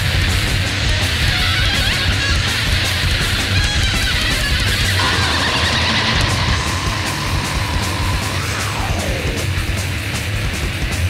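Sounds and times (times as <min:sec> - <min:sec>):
distorted electric guitars: 0:00.0 - 0:11.0
drums and cymbals: 0:00.0 - 0:11.0.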